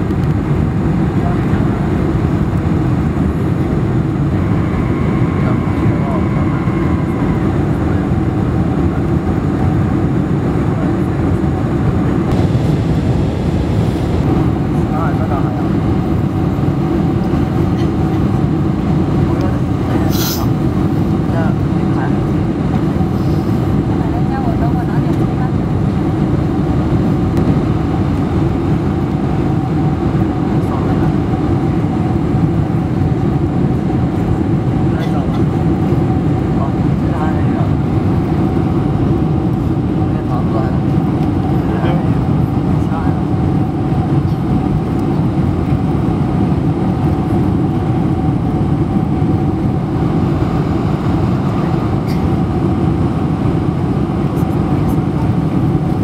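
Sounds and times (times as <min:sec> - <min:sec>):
airplane cabin rumble: 0:00.0 - 0:56.0
steady mid-pitched tone: 0:03.3 - 0:09.6.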